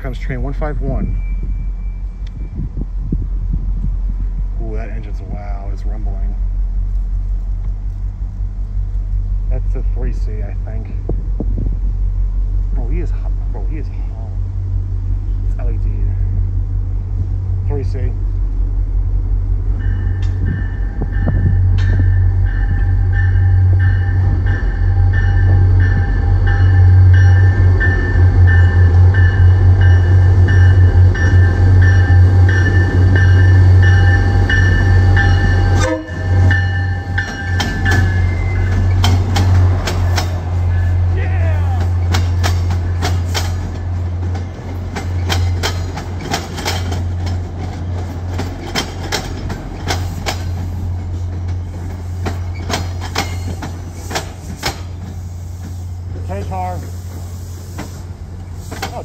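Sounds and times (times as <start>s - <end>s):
diesel locomotive engine rumbling: 0.0s - 59.0s
train wheels clicking over rail joints: 19.7s - 59.0s
train horn chord: 22.8s - 37.4s.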